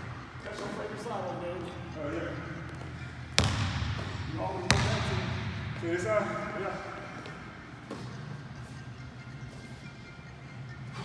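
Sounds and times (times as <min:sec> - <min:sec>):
basketball bouncing on hardwood floor: 0:03.4 - 0:05.3.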